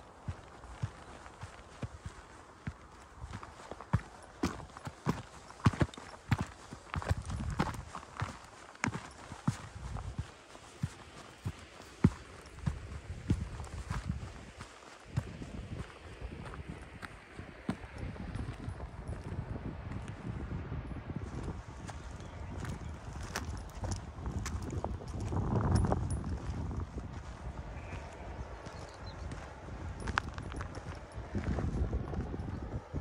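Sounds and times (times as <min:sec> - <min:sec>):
footsteps on dirt path: 0:00.0 - 0:33.0
wind rumbling on microphone: 0:00.0 - 0:33.0.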